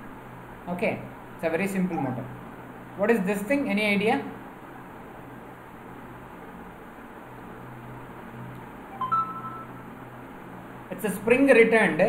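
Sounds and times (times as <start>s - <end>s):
low hum and hiss: 0.0s - 12.0s
two-note electronic tone: 8.9s - 9.8s.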